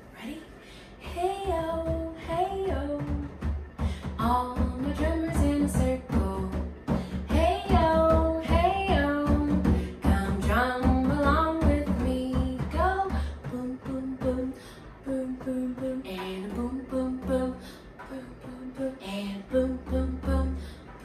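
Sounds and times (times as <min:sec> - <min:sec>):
hand drums: 0:01.3 - 0:14.6.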